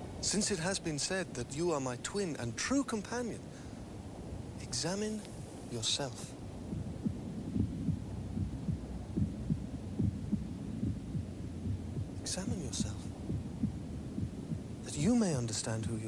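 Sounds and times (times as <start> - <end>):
low pulsing rumble: 3.8 - 16.0.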